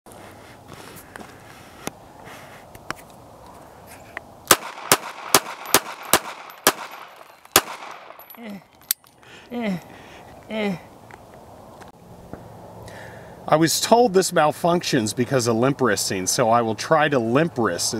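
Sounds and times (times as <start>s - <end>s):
pistol shots: 4.5s - 8.2s.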